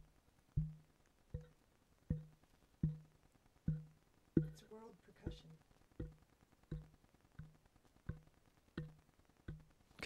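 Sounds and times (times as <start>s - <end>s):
taps on microphone: 0.0s - 3.1s, 3.7s - 4.6s, 5.2s - 9.7s.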